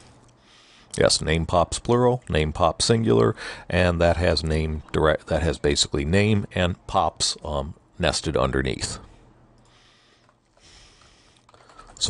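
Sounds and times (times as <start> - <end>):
typing on computer keyboard: 11.4 - 12.0.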